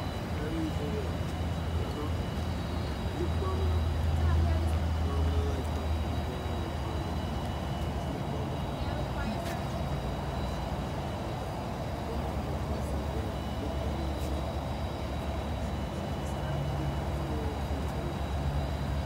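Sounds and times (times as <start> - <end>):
faint indistinct voices: 0.0 - 19.0
vehicle engine idling: 0.0 - 19.0.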